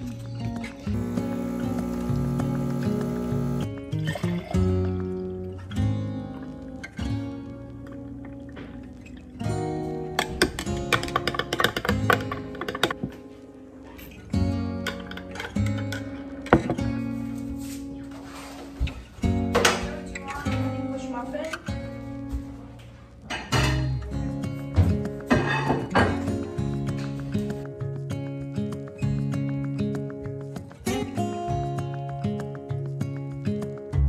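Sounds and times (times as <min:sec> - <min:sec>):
acoustic guitar music: 0:00.0 - 0:34.0.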